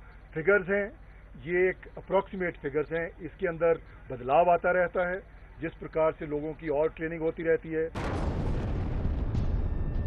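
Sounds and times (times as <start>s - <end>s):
rumble of explosions: 7.9s - 10.0s
sudden blast: 8.0s - 10.0s.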